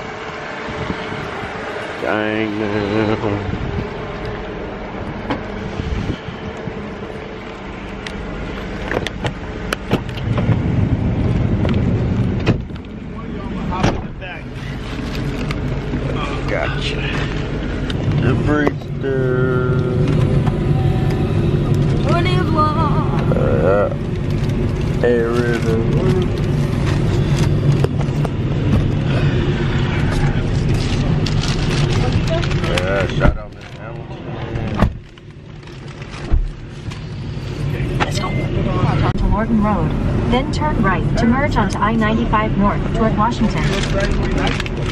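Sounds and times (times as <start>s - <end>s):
vehicle cabin rumble: 0.0s - 44.9s.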